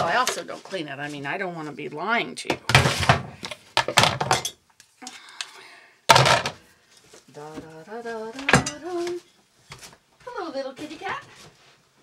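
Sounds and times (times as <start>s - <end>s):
dishes clattering: 3.8s - 4.6s, 8.5s - 8.8s.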